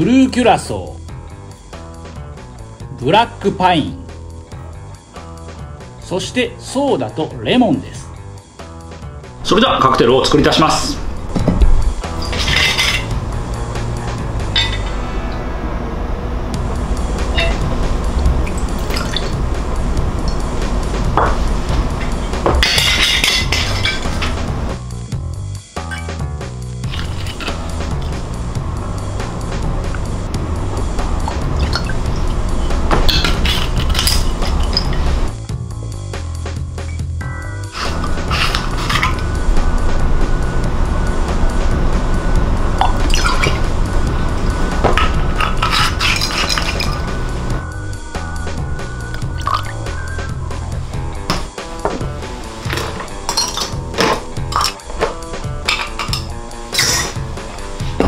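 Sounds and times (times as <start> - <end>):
background music: 0.0 - 58.0
metal bar tools clinking: 12.0 - 13.2, 14.5 - 15.0, 22.6 - 24.4, 33.0 - 35.1, 45.0 - 47.1, 52.7 - 58.0
liquid pouring: 18.3 - 19.4, 26.8 - 28.2, 31.2 - 32.5, 42.8 - 43.8, 49.2 - 49.7.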